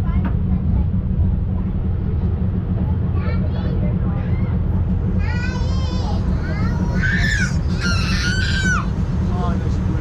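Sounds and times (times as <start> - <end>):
railway carriage rumbling on track: 0.0 - 10.0.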